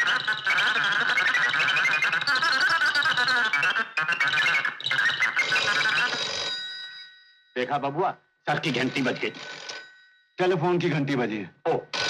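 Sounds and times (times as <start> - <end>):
telephone bell ringing: 5.5 - 7.6, 8.5 - 11.0.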